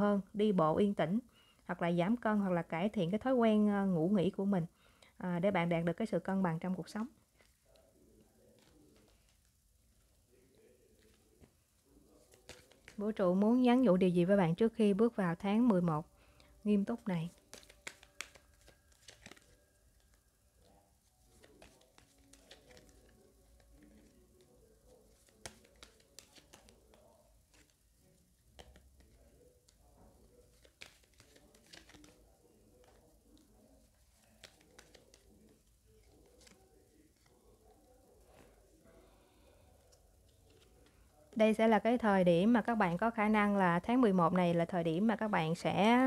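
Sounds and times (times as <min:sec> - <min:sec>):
cards rustling: 0:07.3 - 0:13.0, 0:16.3 - 0:41.4.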